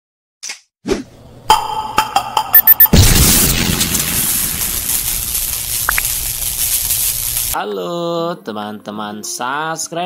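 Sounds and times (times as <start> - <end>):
short rising blip: 2.5 - 3.0.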